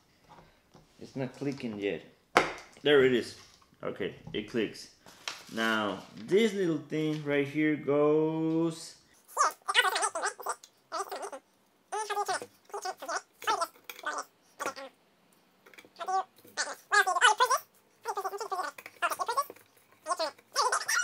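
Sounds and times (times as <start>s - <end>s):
high-pitched voice-like bursts: 9.3s - 14.9s, 16.0s - 21.0s.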